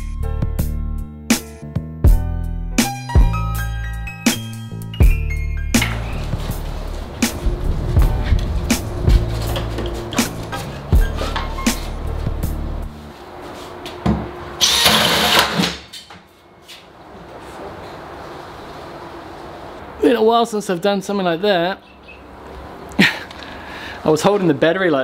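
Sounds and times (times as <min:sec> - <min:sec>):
background music with steady beat: 0:00.0 - 0:13.2
cordless drill cutting wood: 0:14.6 - 0:15.7.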